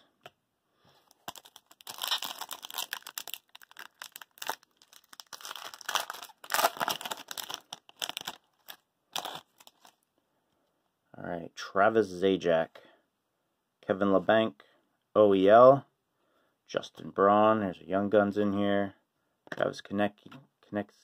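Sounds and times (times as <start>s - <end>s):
foil wrapper tearing and crinkling: 1.1s - 10.0s.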